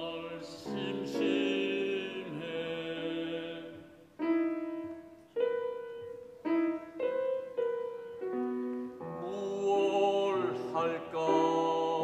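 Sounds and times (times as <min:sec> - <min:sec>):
grand piano notes and chords: 0:00.0 - 0:12.0.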